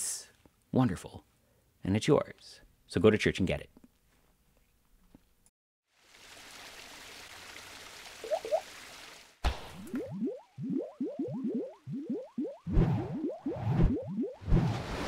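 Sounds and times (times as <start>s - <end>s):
short rising bloops: 8.2s - 8.6s, 9.7s - 15.0s.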